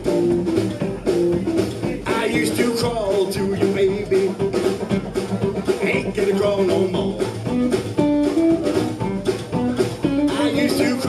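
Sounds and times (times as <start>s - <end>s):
drum kit: 0.0s - 11.0s
electric guitar: 0.0s - 11.0s
upright bass: 0.0s - 11.0s.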